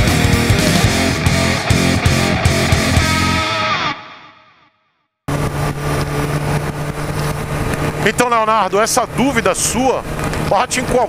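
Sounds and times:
motorcycle engine running: 0.0 - 3.5, 5.3 - 11.0
rock guitar music: 0.0 - 4.9
wind noise on microphone: 5.3 - 8.2.

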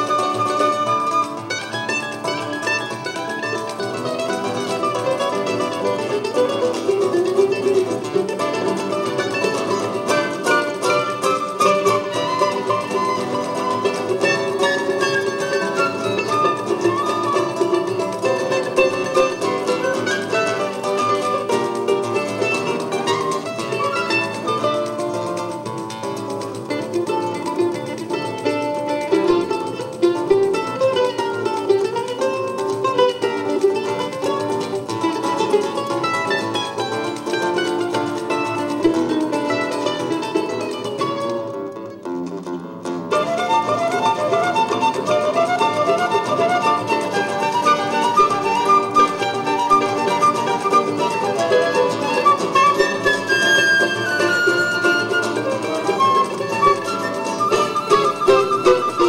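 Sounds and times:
flute melody: 0.0 - 42.0, 43.1 - 59.0
acoustic guitar: 0.0 - 59.0
mandolin melody: 0.0 - 59.0.

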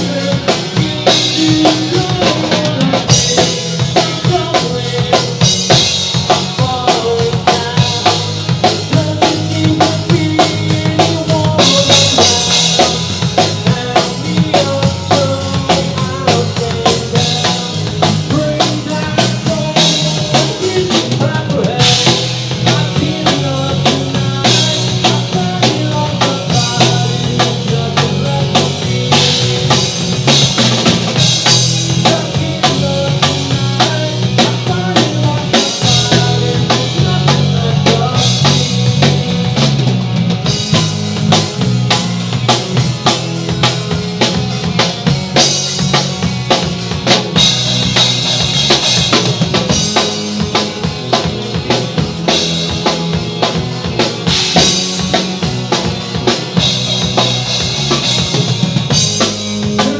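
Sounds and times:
drum kit fast beat: 0.0 - 59.9
electric guitars and bass: 0.0 - 59.9.

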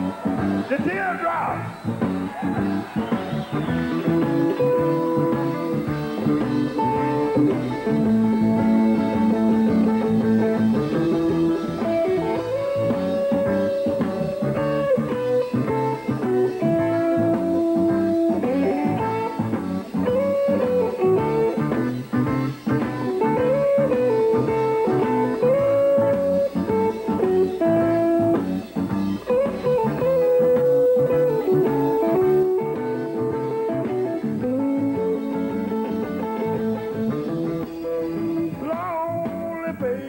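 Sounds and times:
bass guitar: 0.0 - 40.0
drums: 0.0 - 40.0
electric guitar lead: 0.0 - 40.0.

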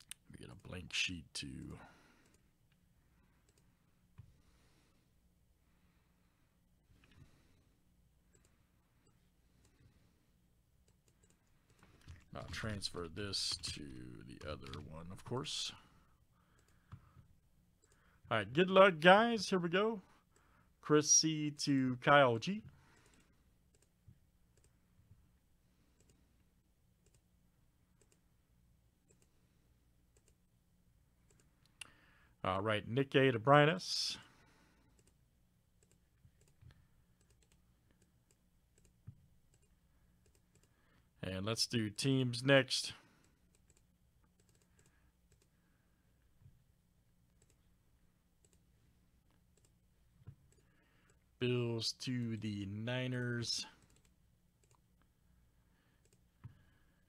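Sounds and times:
computer mouse clicks: 2.2 - 2.4, 3.4 - 4.3, 8.3 - 9.9, 10.8 - 12.6, 14.4 - 15.0, 16.5 - 17.2, 22.9 - 24.8, 25.9 - 26.2, 27.0 - 27.2, 28.0 - 28.2, 29.1 - 29.4, 30.1 - 30.4, 31.2 - 31.9, 34.9 - 35.2, 35.8 - 40.8, 43.2 - 45.6, 47.3 - 47.6, 48.4 - 48.7, 49.3 - 51.2, 53.8 - 54.8, 56.0 - 56.6.

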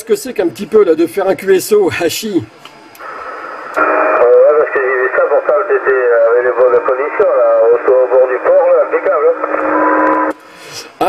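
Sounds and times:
radio hiss: 1.7 - 11.0
radio speech: 3.0 - 10.3.

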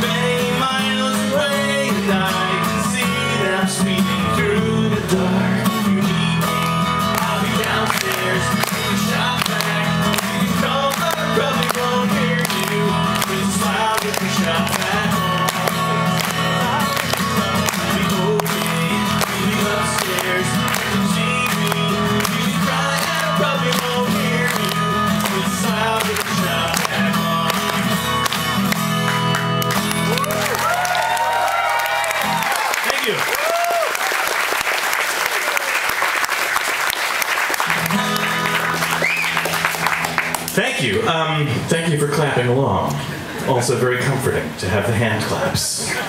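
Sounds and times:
strummed acoustic guitar: 0.0 - 30.6, 37.5 - 46.0
crowd applause and cheering: 6.4 - 40.7
audience clapping along: 6.5 - 40.7.

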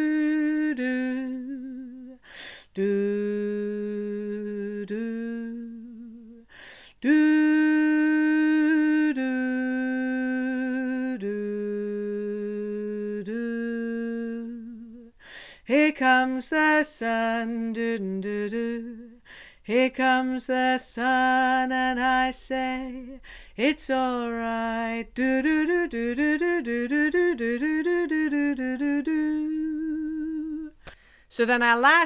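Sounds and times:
woman singing wordless notes: 0.0 - 32.0
breath: 2.2 - 2.7, 6.5 - 7.0, 15.2 - 15.7, 19.2 - 19.6, 23.2 - 23.6, 30.8 - 31.3.

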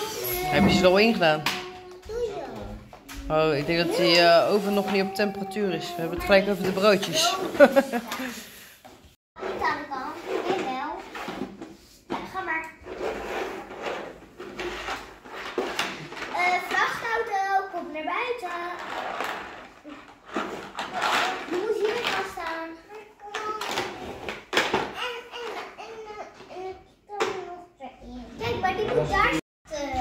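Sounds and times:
young children talking and babbling: 0.0 - 8.2, 16.3 - 18.8, 21.0 - 24.0, 24.9 - 30.0.

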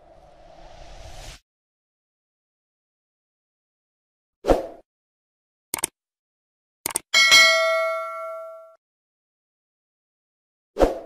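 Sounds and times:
notification bell ding: 7.2 - 8.8.

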